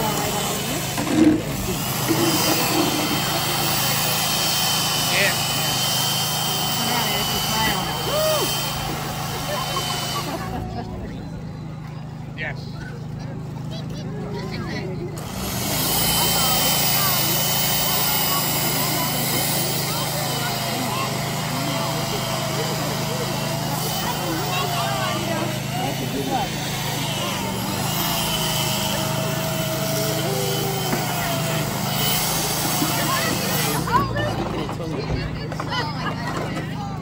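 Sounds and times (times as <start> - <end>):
chainsaw cutting ice: 0.0 - 10.8, 14.4 - 37.0.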